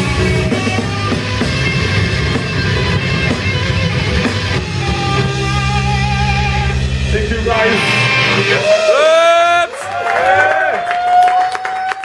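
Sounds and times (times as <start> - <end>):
ringing electric guitar: 0.0 - 9.0
death metal band playing: 0.0 - 9.9.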